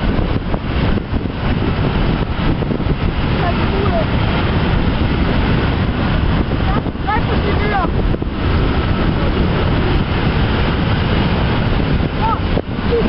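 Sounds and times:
train wagons rumbling on rails: 0:00.0 - 0:13.0
wind buffeting microphone: 0:00.0 - 0:13.0.

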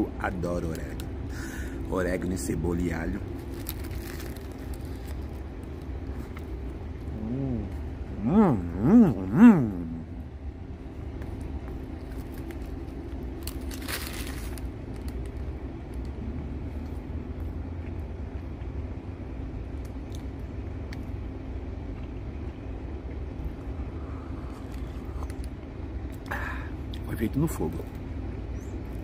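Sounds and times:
vehicle engine idling: 0:00.0 - 0:29.0
faint chewing: 0:03.2 - 0:08.1, 0:21.8 - 0:27.0.

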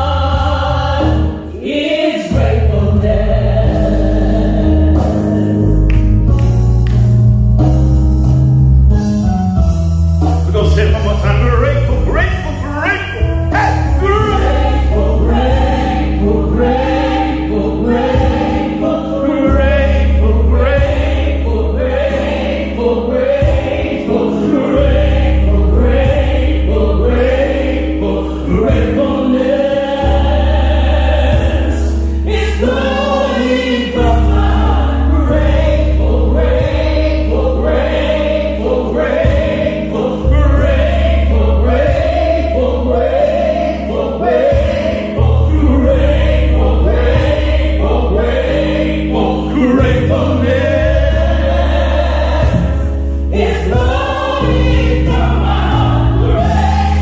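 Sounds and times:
gospel choir singing: 0:00.0 - 0:07.2, 0:10.4 - 0:57.0
low bass line: 0:02.3 - 0:32.4, 0:34.0 - 0:43.6, 0:44.3 - 0:57.0.

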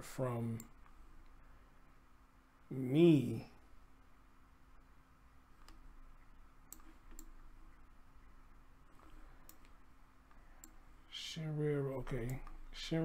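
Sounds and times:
computer mouse clicks: 0:05.6 - 0:05.9, 0:06.7 - 0:07.5, 0:08.9 - 0:10.8, 0:12.1 - 0:12.7.

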